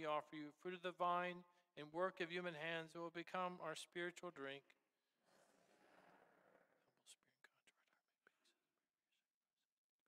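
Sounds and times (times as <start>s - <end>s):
faint whispered prayer: 6.5s - 9.8s.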